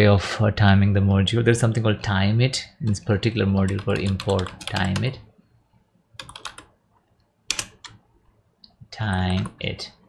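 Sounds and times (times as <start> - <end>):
computer keyboard typing: 3.6 - 5.2, 6.2 - 6.7, 7.5 - 8.0, 9.0 - 9.6.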